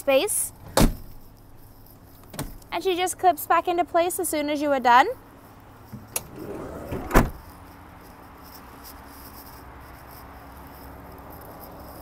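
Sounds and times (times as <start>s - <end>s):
sliding van door slamming shut: 6.1s - 7.4s.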